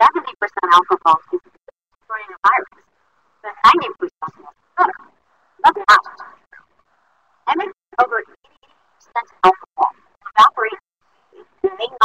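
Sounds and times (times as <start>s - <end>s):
woman speaking: 0.0s - 1.4s, 2.1s - 2.7s, 3.4s - 5.0s, 5.6s - 6.5s, 7.5s - 8.4s, 9.0s - 10.8s, 11.4s - 12.0s.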